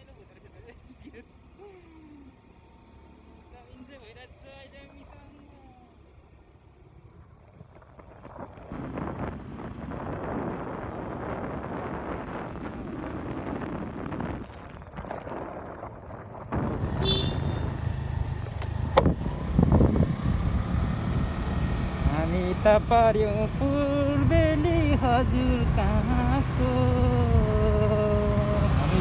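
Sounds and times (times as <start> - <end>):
motorbike engine: 1.2 - 29.0
wind rushing over microphone: 7.0 - 29.0
sharp clicks: 18.4 - 19.2.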